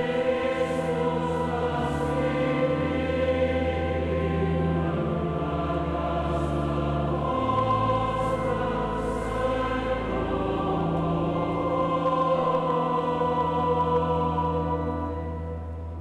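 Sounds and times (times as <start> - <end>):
choir singing sacred music: 0.0 - 16.0.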